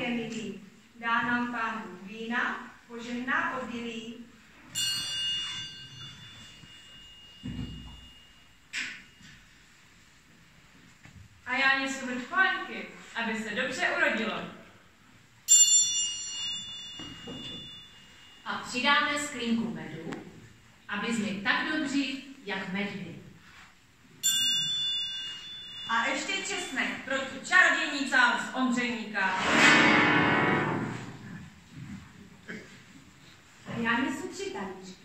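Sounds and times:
small bell ringing: 4.7s - 9.5s, 15.5s - 18.7s, 24.2s - 27.4s.

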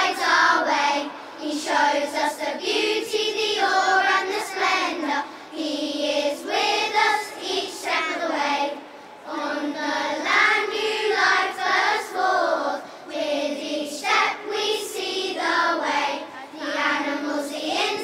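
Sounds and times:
children's choir singing: 0.0s - 18.0s.

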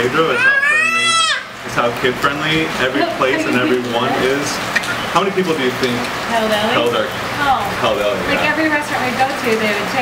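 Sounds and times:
infant squealing: 0.2s - 1.6s.

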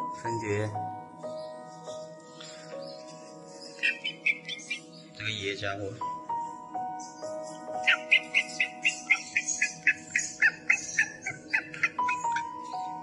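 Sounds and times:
background music with held tones: 0.0s - 13.0s
bird chirping rapidly: 2.9s - 5.6s, 7.0s - 12.9s.

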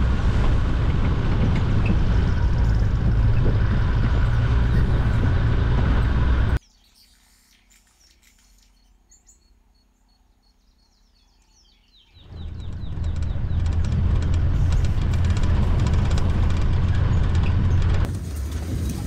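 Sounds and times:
vehicle rumbling on dirt track: 0.0s - 6.6s, 12.2s - 19.0s
faint birds chirping: 6.6s - 15.0s.

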